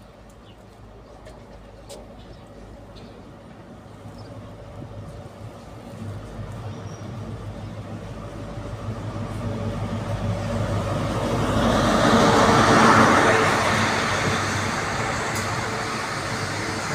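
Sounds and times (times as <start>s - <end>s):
diesel train engine hum: 0.0s - 16.9s
train coaches rumbling by: 0.0s - 16.9s
wheel-on-rail noise: 0.2s - 16.9s.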